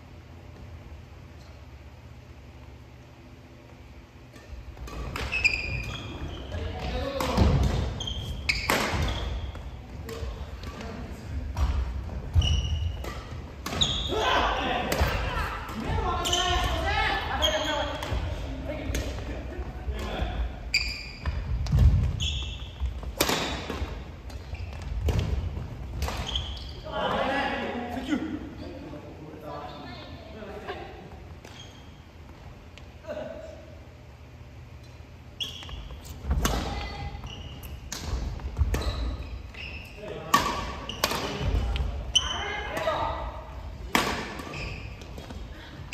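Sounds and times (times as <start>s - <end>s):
sneakers squeaking: 0.3s - 27.2s, 31.0s - 32.9s, 33.9s - 45.9s
rackets hitting shuttlecock: 6.8s - 14.2s, 21.2s - 26.6s, 37.6s - 39.2s, 40.1s - 41.9s, 43.8s - 45.4s.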